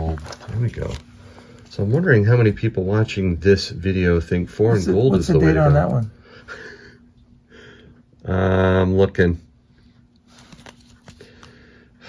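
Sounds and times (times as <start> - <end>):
plastic sleeve crinkling: 0.0 - 2.6.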